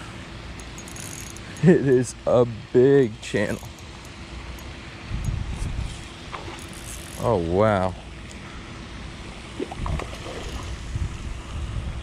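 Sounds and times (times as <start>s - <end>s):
wind buffeting microphone: 5.0s - 6.2s, 9.6s - 12.0s.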